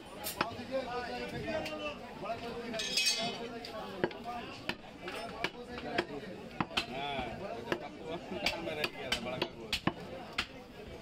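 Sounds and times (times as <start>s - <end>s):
cleaver chopping on wooden block: 7.7s - 10.5s.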